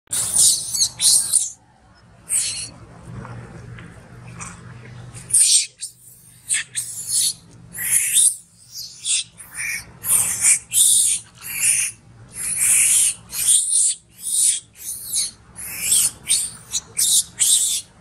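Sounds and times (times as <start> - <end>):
monkey screaming: 0.1 - 1.6, 2.3 - 2.7, 5.3 - 17.9.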